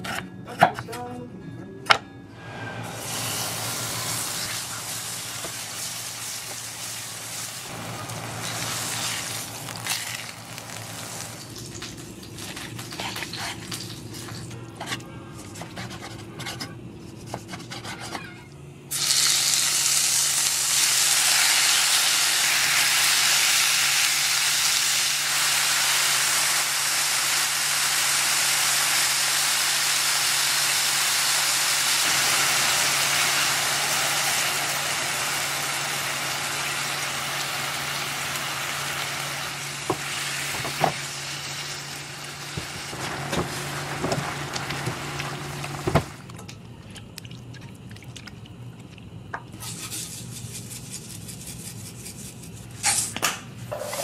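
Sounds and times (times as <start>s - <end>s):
meat frying in a pan: 3.0s - 14.4s, 18.9s - 46.2s
low steady hum: 32.1s - 52.8s.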